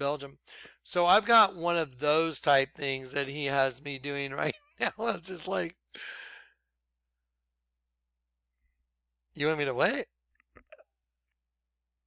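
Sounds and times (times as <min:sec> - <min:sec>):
man sighing: 0:06.0 - 0:06.4.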